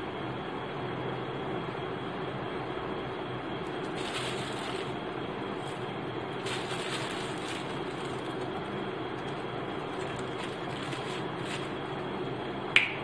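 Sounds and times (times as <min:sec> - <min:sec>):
faint hum: 0:00.0 - 0:13.0.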